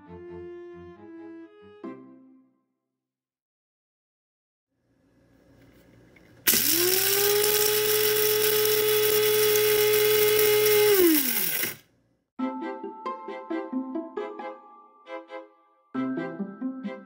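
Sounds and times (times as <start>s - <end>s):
coffee grinder grinding beans: 6.5s - 11.9s.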